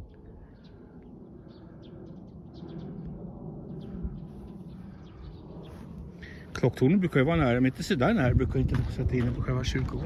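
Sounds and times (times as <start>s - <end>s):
low steady rumble: 0.0s - 9.8s
small birds chirping: 0.0s - 10.0s.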